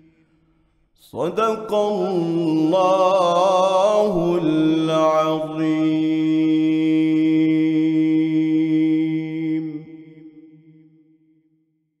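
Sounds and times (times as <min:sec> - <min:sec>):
echo: 0:00.0 - 0:11.8.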